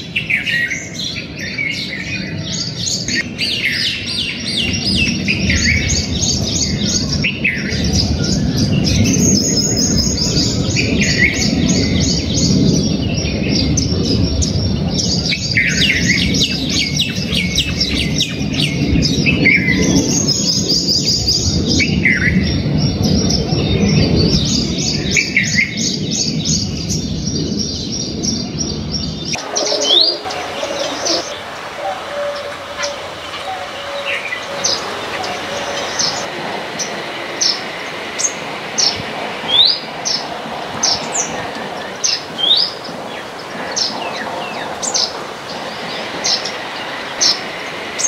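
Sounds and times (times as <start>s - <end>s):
small birds chirping and trilling: 0.0s - 48.0s.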